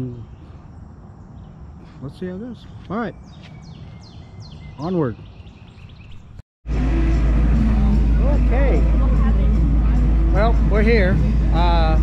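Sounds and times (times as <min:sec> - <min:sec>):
music: 0:06.7 - 0:12.0.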